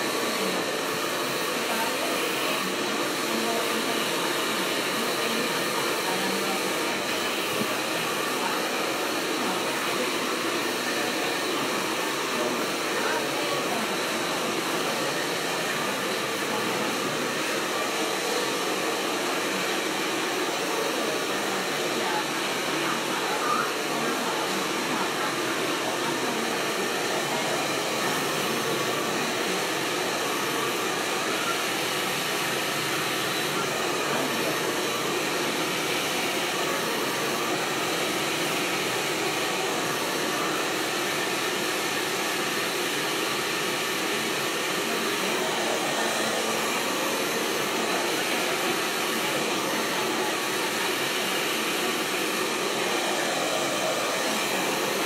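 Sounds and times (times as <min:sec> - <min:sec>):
hair dryer running: 0:00.0 - 0:55.0.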